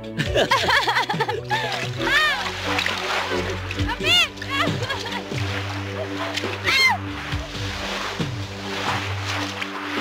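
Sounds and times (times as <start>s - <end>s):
background music with steady tones: 0.0s - 10.0s
feet splashing through surf: 1.5s - 10.0s.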